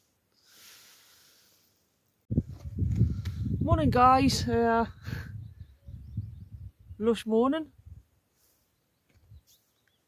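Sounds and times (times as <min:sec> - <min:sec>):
wind rumble on microphone: 0:02.3 - 0:08.1
faint high bird chirps: 0:05.3 - 0:07.5, 0:08.5 - 0:10.0.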